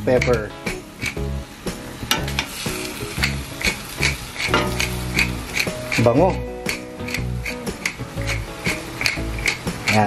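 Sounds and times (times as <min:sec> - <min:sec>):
chicken sizzling: 0:00.0 - 0:10.0
spatula scraping a steel pot: 0:04.0 - 0:06.4, 0:07.0 - 0:10.0.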